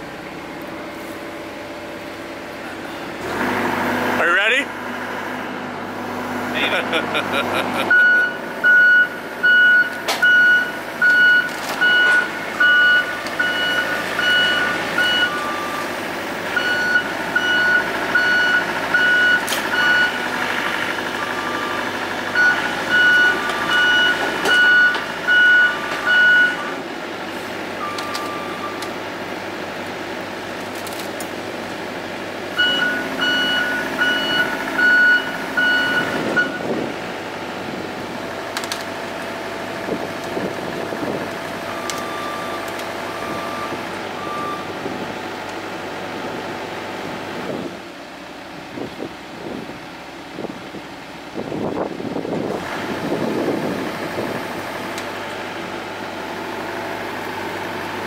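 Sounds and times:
excavator diesel engine running: 0.0 - 58.0
backup alarm beeping: 7.9 - 15.9, 16.6 - 20.2, 32.6 - 36.7.

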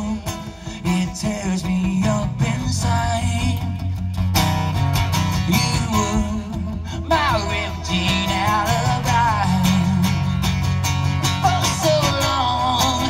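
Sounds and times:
man singing: 0.0 - 4.2, 5.3 - 10.6, 11.2 - 13.0
acoustic guitar strumming: 0.0 - 13.0.

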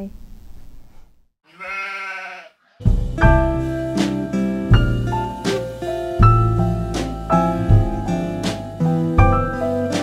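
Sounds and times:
sheep bleat: 1.5 - 2.6
piano music: 2.9 - 10.0.

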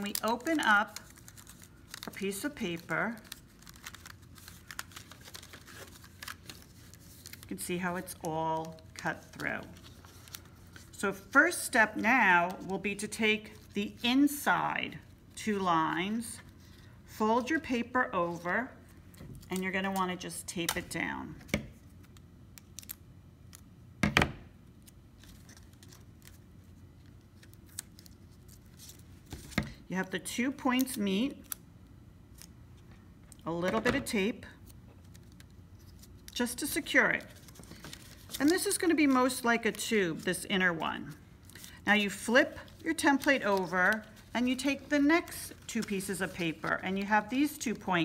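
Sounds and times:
paper rustling and crinkling: 0.0 - 12.7, 24.8 - 29.8, 34.6 - 36.4, 37.1 - 47.8.

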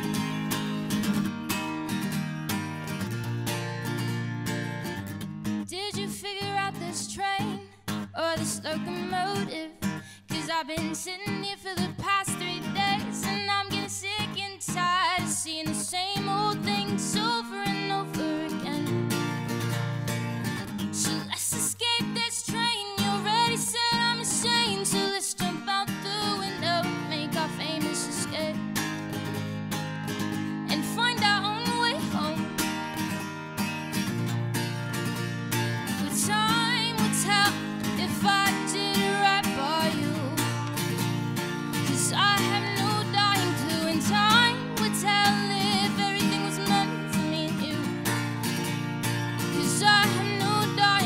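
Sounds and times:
acoustic guitar: 0.0 - 51.0
woman singing: 5.6 - 19.4, 20.8 - 29.4, 30.3 - 33.2, 35.9 - 48.7, 49.3 - 51.0.

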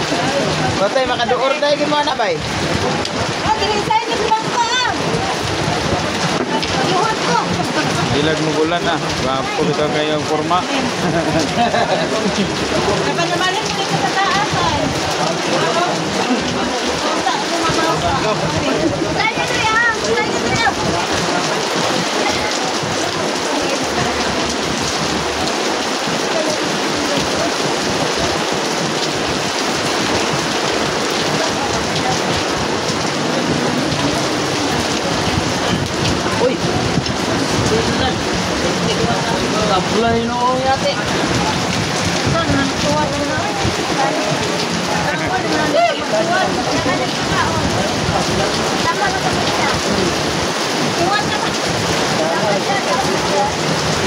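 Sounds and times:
faint voices: 0.0 - 54.0
heavy rain: 0.0 - 54.0.

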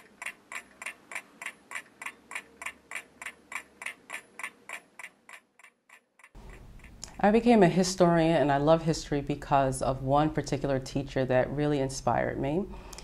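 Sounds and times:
clock ticking: 0.0 - 7.1.

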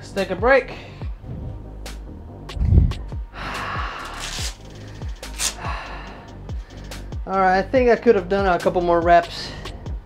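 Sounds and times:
background music with steady beat: 0.0 - 10.0
man breathing hard: 2.7 - 7.2.

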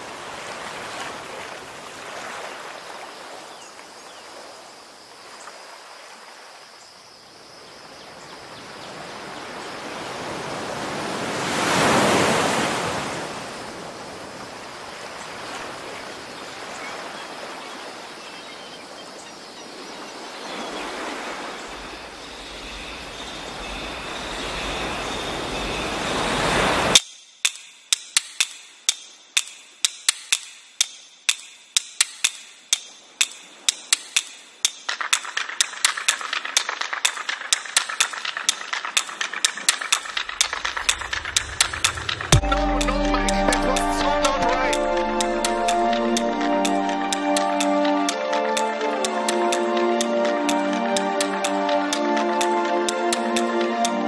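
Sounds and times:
sea surf: 0.0 - 27.0, 33.2 - 54.0
crab claws clicking on rock: 27.4 - 42.3
wind rushing: 40.0 - 46.6.

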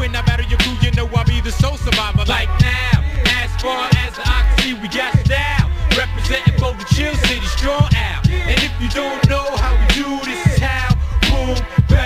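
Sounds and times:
heavy bass line: 0.0 - 12.0
rapping over a beat: 0.0 - 12.0.

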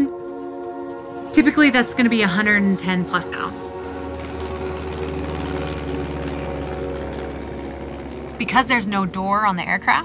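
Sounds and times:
background music: 0.0 - 10.0
propeller aircraft engines droning: 0.0 - 10.0.

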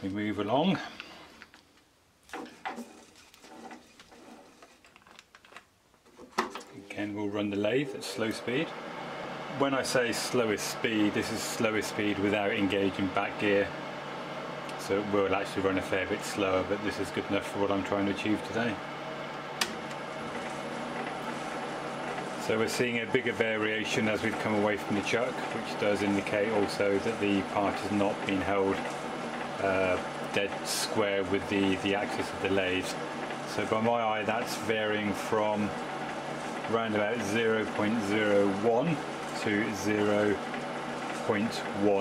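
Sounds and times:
lathe running: 2.3 - 4.7, 7.6 - 42.0.

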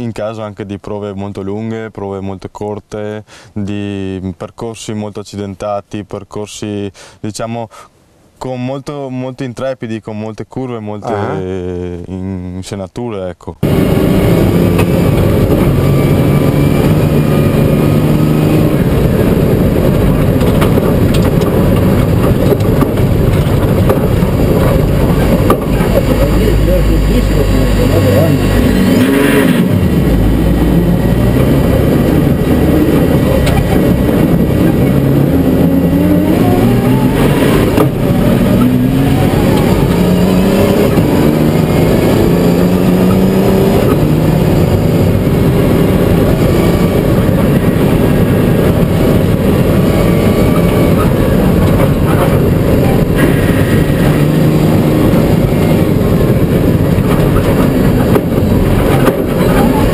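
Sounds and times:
gravel road noise: 13.6 - 59.9
rally car engine revving: 13.6 - 59.9.

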